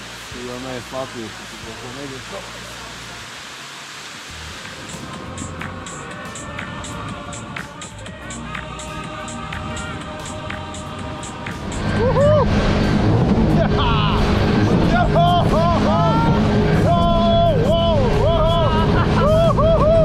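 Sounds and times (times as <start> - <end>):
soft music: 4.2 - 20.0
jet ski rushing over water: 9.4 - 20.0.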